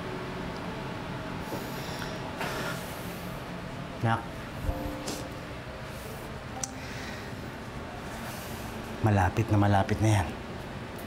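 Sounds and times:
soft sustained background music: 0:00.0 - 0:03.7, 0:04.4 - 0:08.7.

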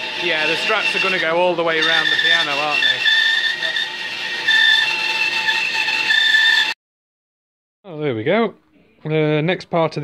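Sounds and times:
bandsaw whining: 0:00.0 - 0:06.8.

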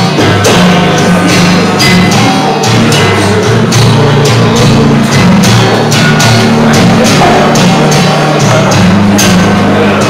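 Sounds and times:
live band playing loudly: 0:00.0 - 0:10.0
steady drum beat: 0:00.0 - 0:10.0.

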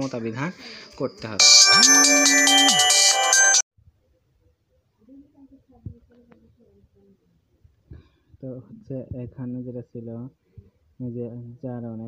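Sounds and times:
electronic phone ringtone: 0:01.3 - 0:03.6.

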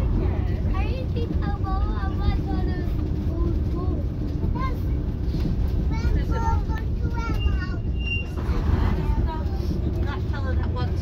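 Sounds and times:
diesel engine rumbling: 0:00.0 - 0:11.0
passengers chattering: 0:00.0 - 0:11.0.

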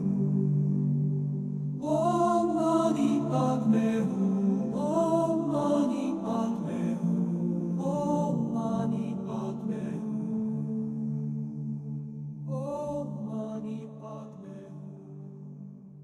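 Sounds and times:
chanted vocal mantra: 0:00.0 - 0:16.0
steady low drone: 0:00.0 - 0:16.0.

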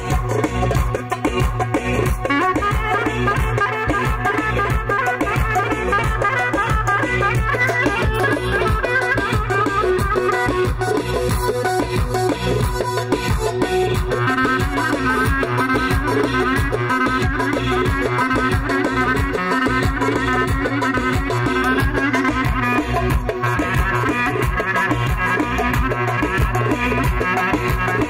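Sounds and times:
band playing dance music: 0:00.0 - 0:28.0.

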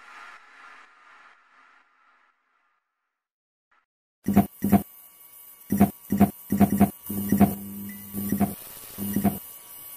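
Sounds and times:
neon sign buzzing and humming: 0:04.3 - 0:09.9.

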